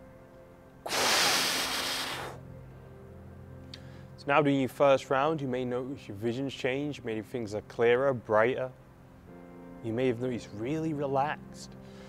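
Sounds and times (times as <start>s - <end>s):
man blowing out hard: 0.9s - 2.4s.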